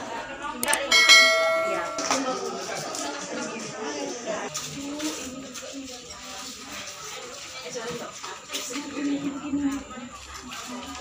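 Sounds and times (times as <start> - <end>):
metallic bell ding: 0.6 - 2.5.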